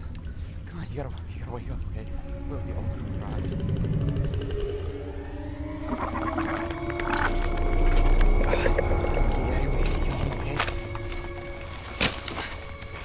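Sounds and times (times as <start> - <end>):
deep rumble: 0.0 - 13.0
eerie sustained drawn-out tones: 0.0 - 13.0.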